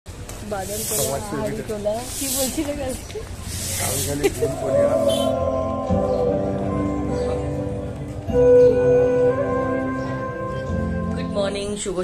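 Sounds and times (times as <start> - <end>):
steady background noise: 0.1 - 12.0.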